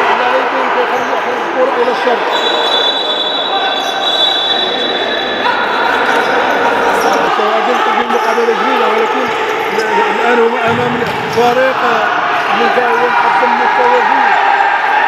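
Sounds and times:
long high whistle: 0:02.3 - 0:05.3
ball and court sounds: 0:05.4 - 0:13.1.

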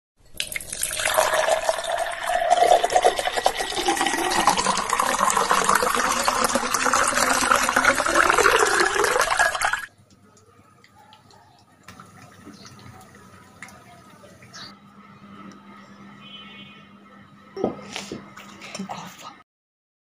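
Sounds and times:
water pouring into a glass: 0:00.3 - 0:09.9.

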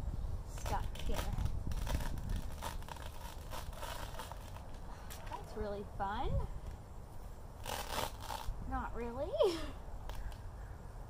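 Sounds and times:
lace peeling off paint: 0:00.6 - 0:05.5, 0:07.6 - 0:08.6.

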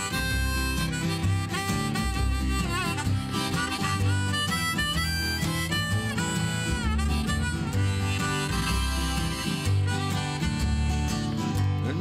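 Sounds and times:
harmonica playing chords: 0:00.0 - 0:12.0
plucked upright bass: 0:00.0 - 0:12.0
strummed acoustic guitar: 0:00.0 - 0:12.0.

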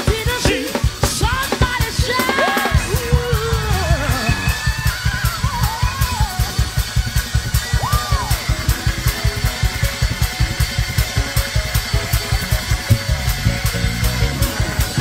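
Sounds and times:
drum kit: 0:00.0 - 0:15.0
bass guitar: 0:02.8 - 0:15.0.

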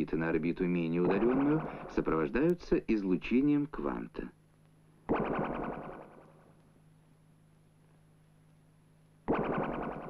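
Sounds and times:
pulsing buzzy synth tone: 0:05.1 - 0:06.4, 0:09.3 - 0:10.0.

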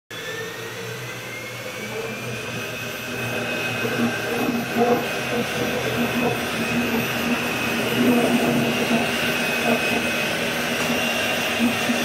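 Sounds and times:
mixer motor whine: 0:00.1 - 0:12.0
steady hum: 0:01.6 - 0:12.0.

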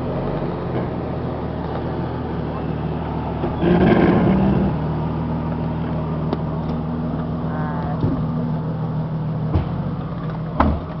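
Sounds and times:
engine idling: 0:04.8 - 0:11.0.

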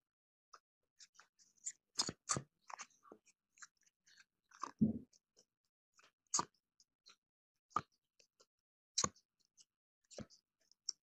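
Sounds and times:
dull thump: 0:04.8 - 0:05.0.

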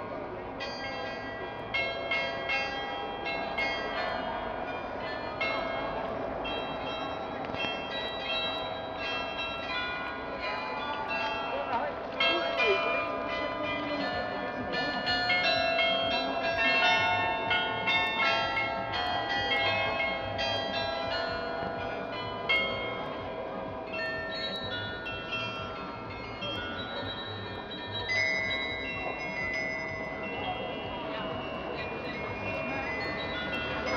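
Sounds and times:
carillon bells playing a melody: 0:00.6 - 0:33.9.

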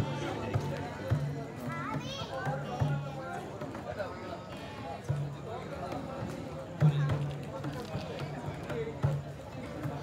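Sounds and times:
crowd chatter: 0:00.0 - 0:10.0
drums beating slowly: 0:00.0 - 0:10.0
children's voices: 0:01.6 - 0:02.9.

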